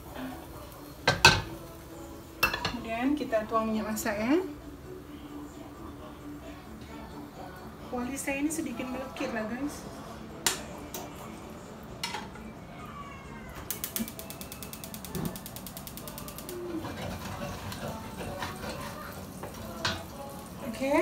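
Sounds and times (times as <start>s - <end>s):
faint kitchen noise: 0.0s - 21.0s
ratchet-like mechanical clicks: 13.7s - 16.7s.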